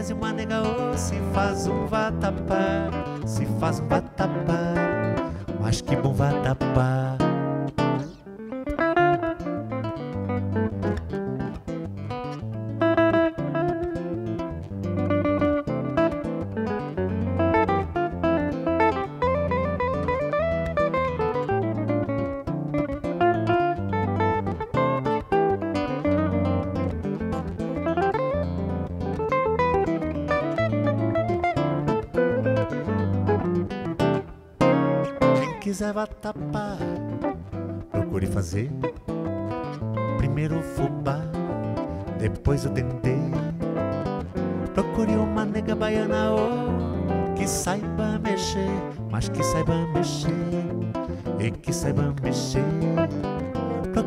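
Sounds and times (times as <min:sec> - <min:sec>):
electric and acoustic guitars playing: 0:00.0 - 0:54.0.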